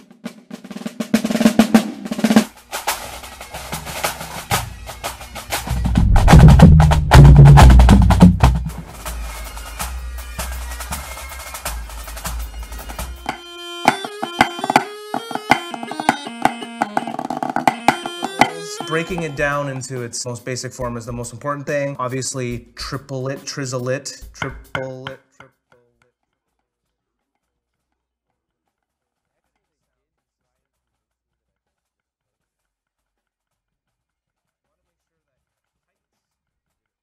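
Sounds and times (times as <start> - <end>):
fast snare drumming: 0.0 - 21.4, 22.8 - 25.5
music with short pitched notes: 3.6 - 9.2, 12.2 - 21.0, 24.4 - 25.5
deep drum rumble: 5.5 - 9.0.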